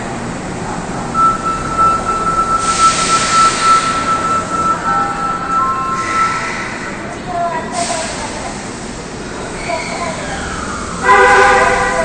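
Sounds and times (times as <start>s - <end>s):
electronic signal tone: 1.2s - 6.5s.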